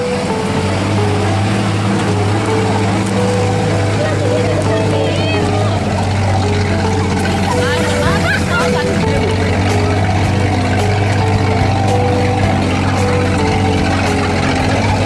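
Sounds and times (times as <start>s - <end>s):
background music with held notes: 0.0s - 15.0s
passengers talking: 0.0s - 15.0s
vehicle engine droning: 0.0s - 15.0s.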